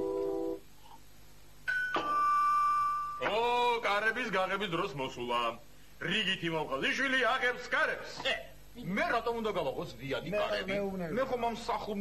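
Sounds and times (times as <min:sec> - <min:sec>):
two-tone doorbell chime: 0:01.7 - 0:03.2.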